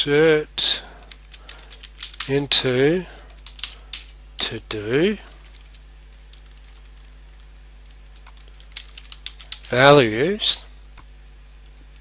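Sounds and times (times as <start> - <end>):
keyboard typing clicks: 5.4 - 9.7.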